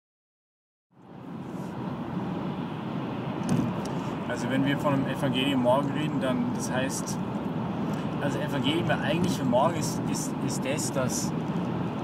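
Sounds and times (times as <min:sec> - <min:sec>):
car road and engine rumble: 0:00.9 - 0:12.0.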